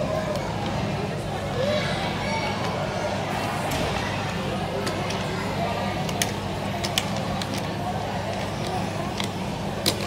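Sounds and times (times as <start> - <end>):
voices echoing in a hall: 0.0 - 10.0.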